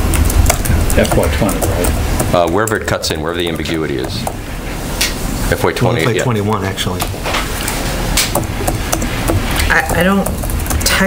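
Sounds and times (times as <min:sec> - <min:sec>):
steady room hiss: 0:00.0 - 0:11.0
sharp taps: 0:00.1 - 0:04.4, 0:08.2 - 0:11.0.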